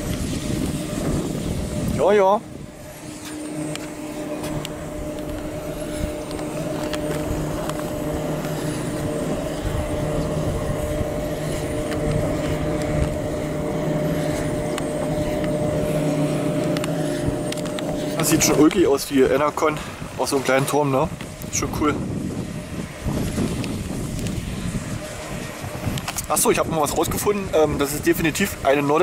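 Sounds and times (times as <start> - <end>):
wind turbine mechanical hum: 0.0 - 29.0.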